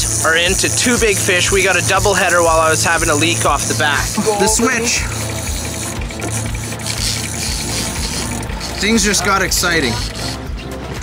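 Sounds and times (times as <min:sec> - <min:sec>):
fishing reel clicker ratcheting: 0:00.0 - 0:10.5.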